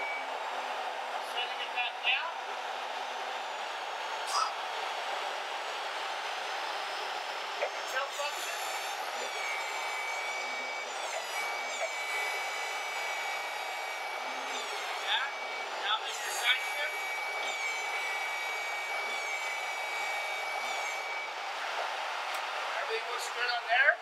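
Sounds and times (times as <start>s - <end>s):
forklift engine running: 0.0s - 8.2s
high hydraulic whine: 0.0s - 23.6s.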